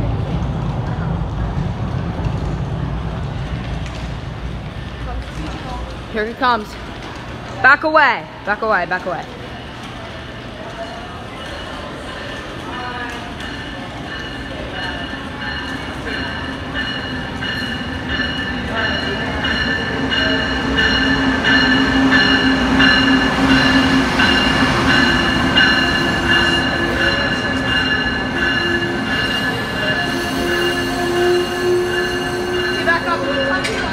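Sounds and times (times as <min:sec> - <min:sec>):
train rumbling past platform: 0:00.0 - 0:33.9
high-pitched wheel squeal: 0:28.4 - 0:33.9.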